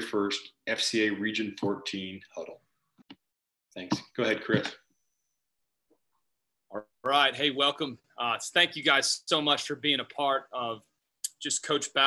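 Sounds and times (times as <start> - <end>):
man speaking: 0.0 - 2.6, 3.8 - 4.8, 6.7 - 12.0.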